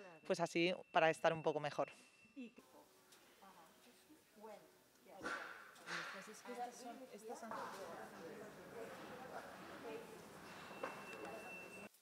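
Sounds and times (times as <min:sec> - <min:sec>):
faint indistinct voices: 0:05.2 - 0:11.9.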